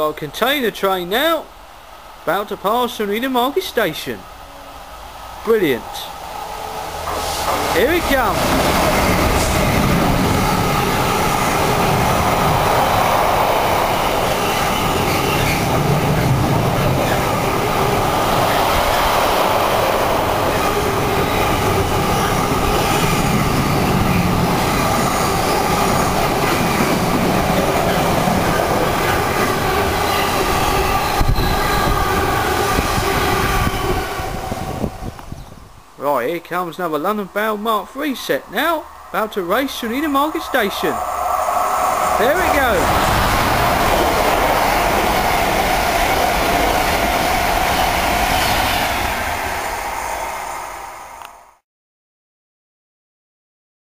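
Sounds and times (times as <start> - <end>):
diesel locomotive passing: 1.3 - 35.4, 37.0 - 51.6
wagons clattering over rails: 7.0 - 12.8.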